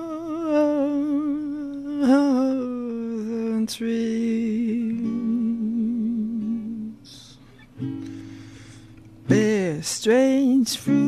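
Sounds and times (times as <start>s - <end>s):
man singing long vibrato note: 0.0s - 7.4s.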